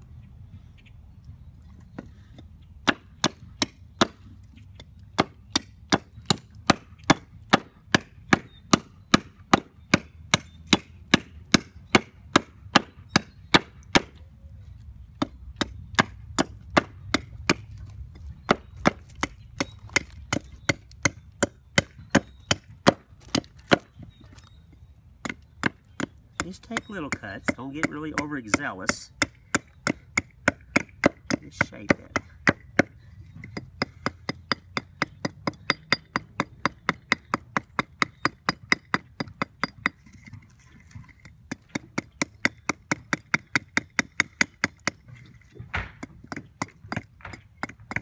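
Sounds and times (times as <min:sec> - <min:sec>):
hatchet chopping wood: 0:02.0 - 0:14.2, 0:15.2 - 0:24.4, 0:25.2 - 0:48.0.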